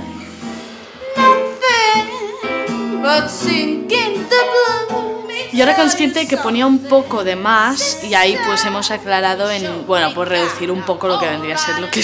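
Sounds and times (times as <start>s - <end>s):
soft instrumental accompaniment: 0.0s - 12.0s
girl singing with vibrato: 1.0s - 7.1s.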